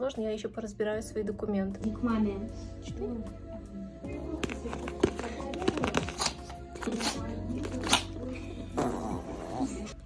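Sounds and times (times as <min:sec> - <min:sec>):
small dog growling: 0:08.8 - 0:10.0.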